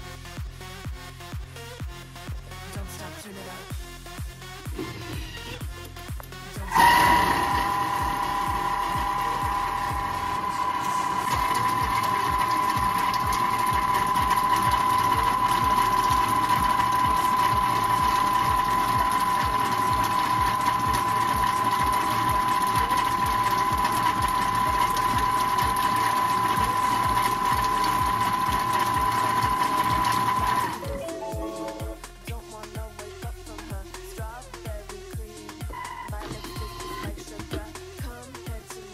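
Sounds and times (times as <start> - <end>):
food processor motor whine: 4.7 - 32.0, 35.6 - 38.0.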